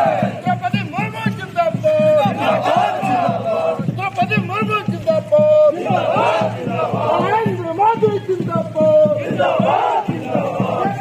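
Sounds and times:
crowd shouting slogans: 0:00.0 - 0:00.7, 0:01.7 - 0:04.2, 0:05.2 - 0:11.0.

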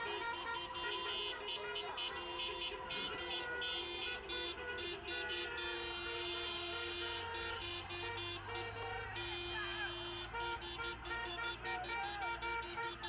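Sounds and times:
car horns honking: 0:00.0 - 0:13.0
engine and road rumble: 0:00.0 - 0:13.0.

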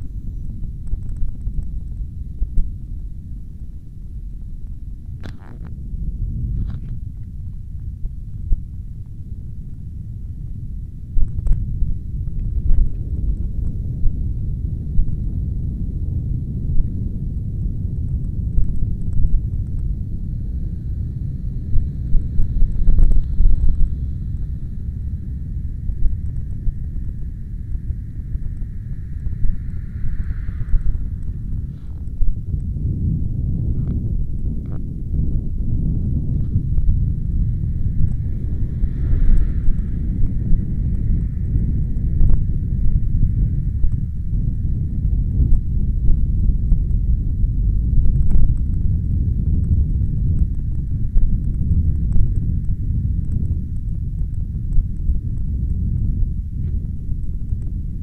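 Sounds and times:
wind rumble on microphone: 0:00.0 - 0:58.0.

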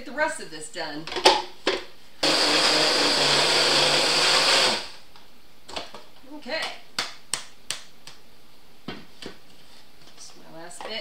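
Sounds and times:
blender running at high speed: 0:02.2 - 0:05.0.

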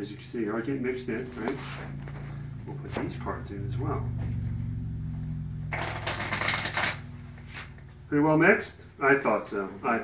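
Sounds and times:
steady low hum: 0:00.0 - 0:10.0
playing cards riffle-shuffled: 0:05.7 - 0:07.8.

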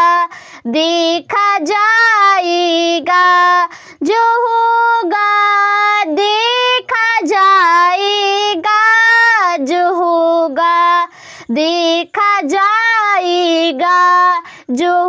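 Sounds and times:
boy singing unaccompanied: 0:00.0 - 0:15.0.

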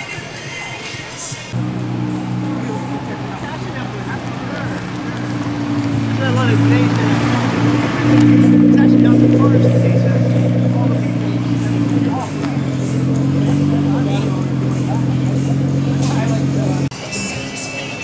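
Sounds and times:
crowd chatter: 0:00.0 - 0:18.0
car engine at low revs: 0:01.6 - 0:16.9.

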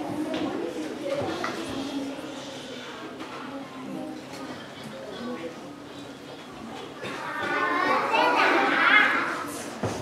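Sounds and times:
young children's voices overlapping: 0:00.0 - 0:10.0.

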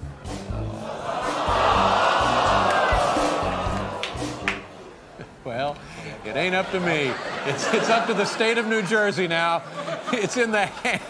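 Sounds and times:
background music with bass line: 0:00.0 - 0:04.8
studio audience noise: 0:00.0 - 0:11.0.

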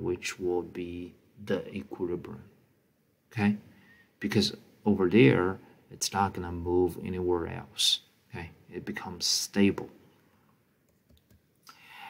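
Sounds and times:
soft breath: 0:03.7 - 0:04.2, 0:11.7 - 0:12.0.

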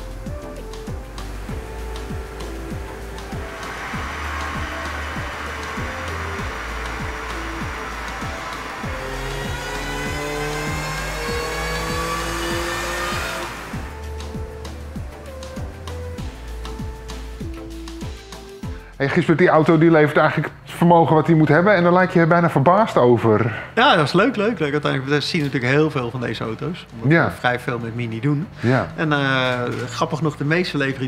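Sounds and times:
car engine at full load: 0:00.0 - 0:17.4
background music: 0:00.0 - 0:31.0.

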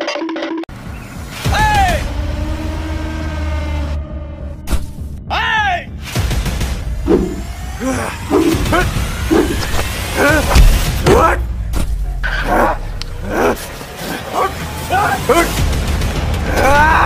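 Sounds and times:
background music: 0:00.0 - 0:17.0
men shouting and grunting: 0:07.1 - 0:11.6, 0:12.4 - 0:15.7, 0:16.3 - 0:17.0.

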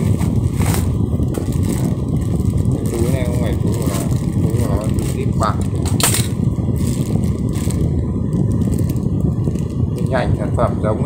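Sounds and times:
plastic bag crinkling: 0:00.0 - 0:10.2
steady low rumble: 0:00.0 - 0:11.0.

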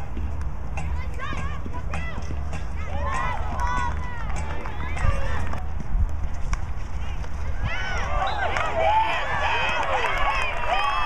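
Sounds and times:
players shouting: 0:07.5 - 0:11.0.

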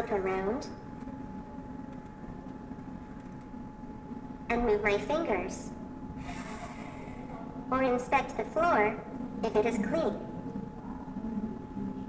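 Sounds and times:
faint mechanical hum: 0:00.0 - 0:12.0.

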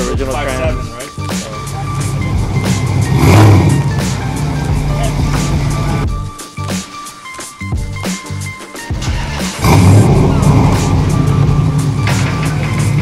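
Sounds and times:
music with steady beat: 0:00.0 - 0:13.0
car engine running hard: 0:01.5 - 0:06.3, 0:09.2 - 0:13.0.

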